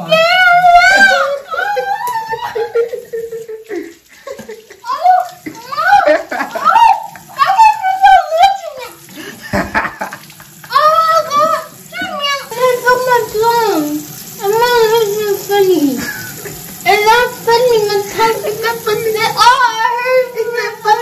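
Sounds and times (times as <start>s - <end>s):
water splashing in a sink: 0.0s - 21.0s.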